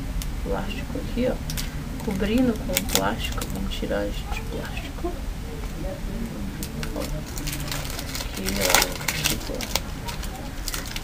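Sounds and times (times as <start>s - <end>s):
faint crackles: 0.2s - 11.0s
plastic film wrapper crinkling: 1.4s - 4.8s, 6.6s - 11.0s.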